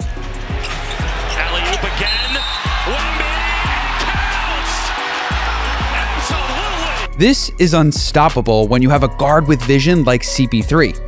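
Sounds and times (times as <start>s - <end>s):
low bass background music: 0.0s - 11.0s
arena crowd noise: 0.1s - 7.2s.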